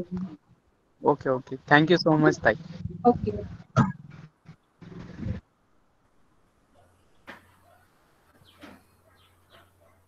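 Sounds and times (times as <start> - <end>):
muffled low voice: 1.9 - 3.9.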